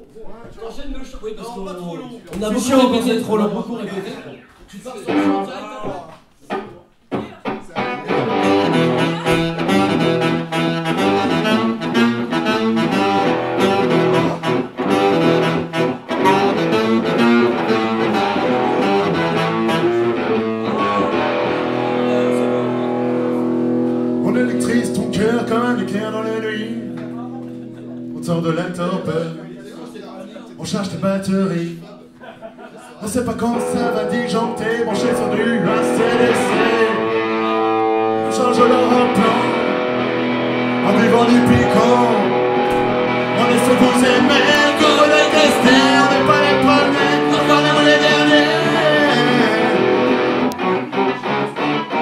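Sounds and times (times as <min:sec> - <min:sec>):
acoustic band playing: 0:05.0 - 0:52.0
person talking: 0:24.2 - 0:37.1, 0:40.8 - 0:42.4.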